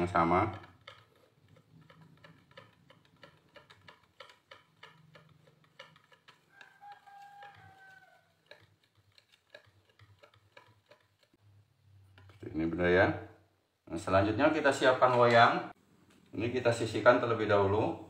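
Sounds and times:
whisk ticking against bowl: 0.0s - 11.4s, 12.0s - 12.4s
faint rooster crowing: 6.3s - 8.8s.

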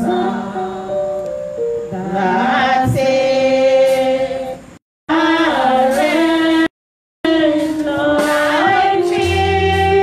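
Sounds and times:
congregation singing: 0.0s - 1.3s, 1.9s - 10.0s.

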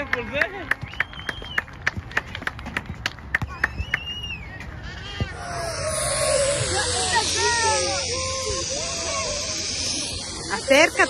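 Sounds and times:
hand claps: 0.0s - 4.2s
high voice calling out: 4.8s - 11.0s.

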